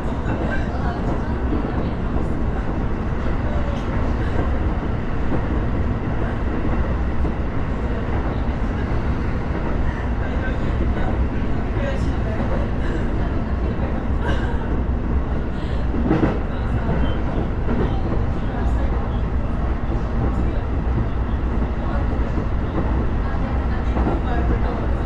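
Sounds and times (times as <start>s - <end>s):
train wheels rumbling on rail: 0.0s - 25.0s.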